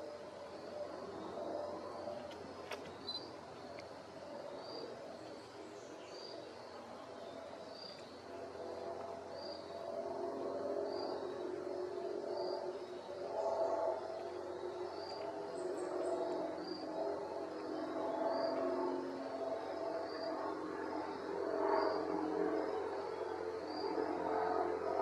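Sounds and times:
wavering hum of low tones: 0:00.0 - 0:25.0.

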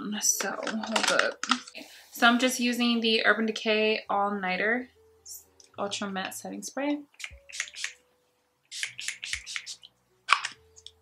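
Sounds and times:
spray bottle hissing: 0:07.5 - 0:08.0, 0:08.7 - 0:09.9.

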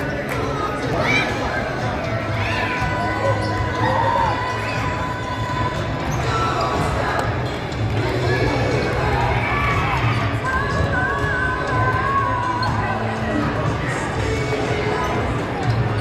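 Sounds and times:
crowd voices: 0:00.0 - 0:16.0.

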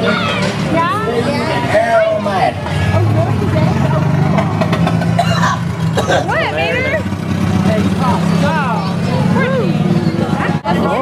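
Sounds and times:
tow truck engine humming: 0:00.0 - 0:11.0.

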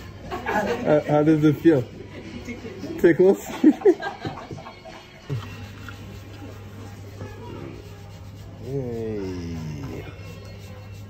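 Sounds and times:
foot being scrubbed: 0:05.3 - 0:11.0.

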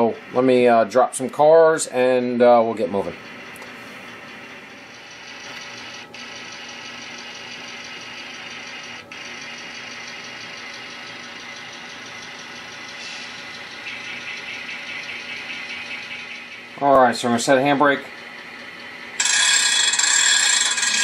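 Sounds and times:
model locomotive running: 0:02.5 - 0:21.0.

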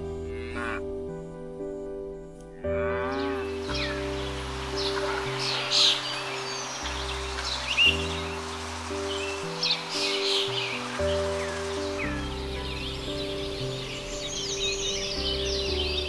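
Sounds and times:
slow sustained chords music: 0:00.0 - 0:16.0
robin singing: 0:02.8 - 0:16.0.

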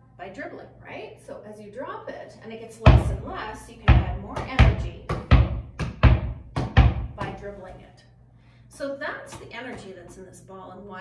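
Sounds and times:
basketball bouncing on carpet: 0:02.9 - 0:07.4.

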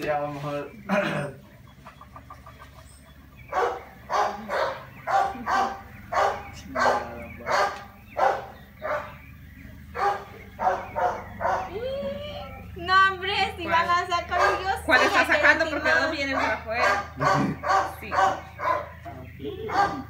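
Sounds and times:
dog barking: 0:03.5 - 0:09.2, 0:09.9 - 0:11.8, 0:14.3 - 0:15.1, 0:16.3 - 0:19.0, 0:19.6 - 0:20.0.

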